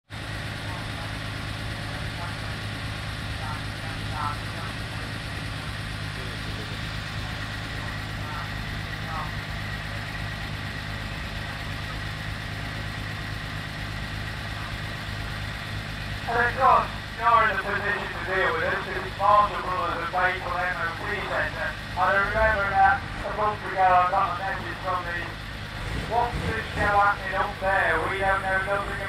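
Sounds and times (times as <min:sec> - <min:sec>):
diesel engine idling: 0:00.1 - 0:29.0
faint voices: 0:00.5 - 0:29.0.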